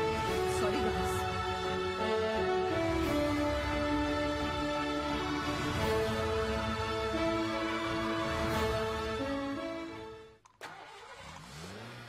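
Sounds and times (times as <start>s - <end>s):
car engine starting and running: 0.0s - 12.0s.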